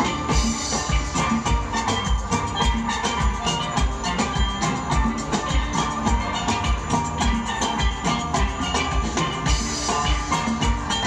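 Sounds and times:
low beat thumps: 0.0s - 11.0s
steelpans ringing: 0.0s - 11.0s.

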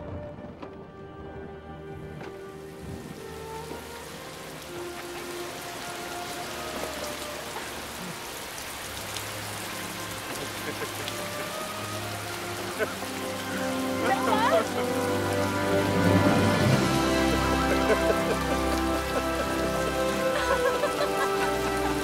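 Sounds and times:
heavy rain on lake water: 0.0s - 22.0s
music of long held notes: 0.0s - 22.0s.

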